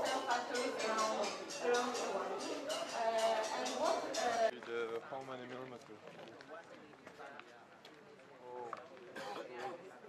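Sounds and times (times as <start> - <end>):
faint group of people talking: 0.0 - 10.0.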